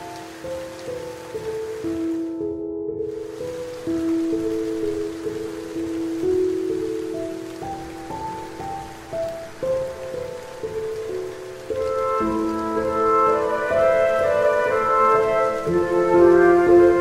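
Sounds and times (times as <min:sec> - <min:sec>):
slow instrumental melody: 0:00.0 - 0:17.0
steady rain falling: 0:00.0 - 0:17.0.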